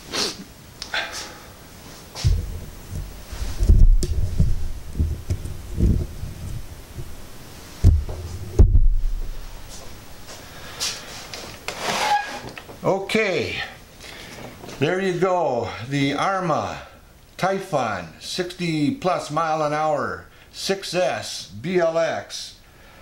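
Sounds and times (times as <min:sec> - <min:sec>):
camera handling rumble: 0:02.2 - 0:07.2
man speaking: 0:12.8 - 0:13.8, 0:14.8 - 0:22.6.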